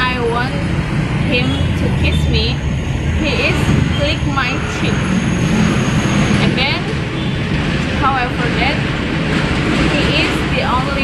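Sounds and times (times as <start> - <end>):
woman's voice: 0.0 - 0.7, 1.3 - 2.6, 3.2 - 5.1, 6.4 - 7.0, 8.0 - 8.8, 10.0 - 11.0
road traffic rumble: 0.0 - 11.0.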